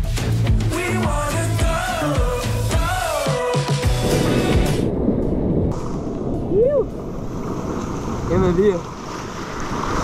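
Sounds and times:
surf washing and rushing: 0:02.0 - 0:10.0
wind buffeting microphone: 0:04.0 - 0:10.0.

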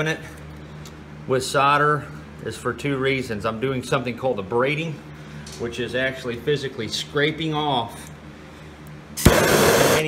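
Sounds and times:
gas torch flame hissing: 0:09.2 - 0:10.0
torch ignition click: 0:09.2 - 0:10.0.

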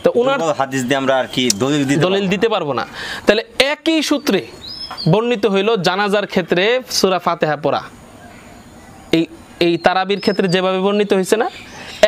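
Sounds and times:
man speaking: 0:00.0 - 0:08.0, 0:09.1 - 0:11.6.

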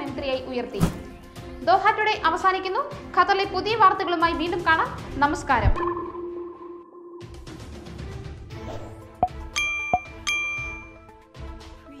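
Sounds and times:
soft background music: 0:00.0 - 0:12.0
bright bell-like chime: 0:09.6 - 0:11.0.

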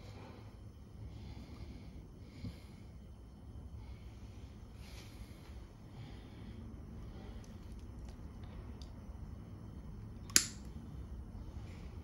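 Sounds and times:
metal spring clip snapping: 0:10.3 - 0:10.7.

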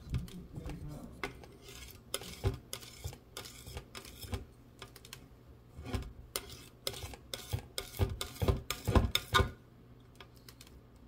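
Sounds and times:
palette knife scraping paint: 0:00.7 - 0:04.5, 0:05.8 - 0:09.5.

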